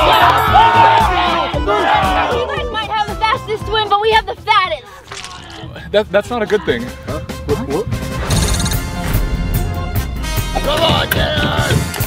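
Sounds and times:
people shouting excitedly: 0.0s - 4.1s
background music with bass: 0.0s - 4.9s, 5.6s - 12.0s.

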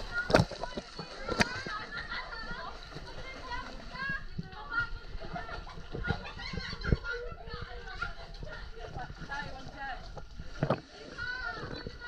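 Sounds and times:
swimmers splashing water: 0.0s - 12.0s.

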